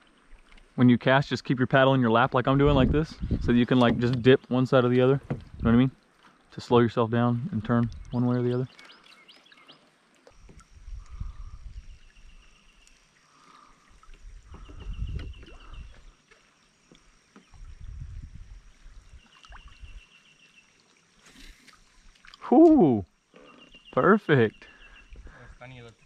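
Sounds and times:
water swishing around kayak and paddle: 2.5 - 26.0.

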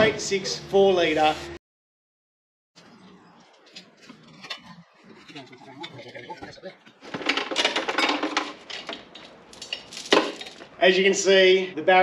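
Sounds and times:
chain and metal parts clinking: 7.2 - 10.7.

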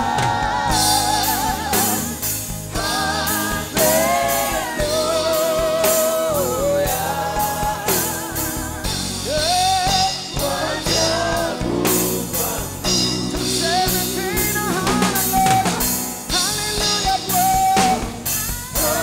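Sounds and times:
drum kit steady beat: 0.0 - 19.0
sustained bass line: 0.0 - 19.0
voices singing gospel melody: 0.0 - 19.0.

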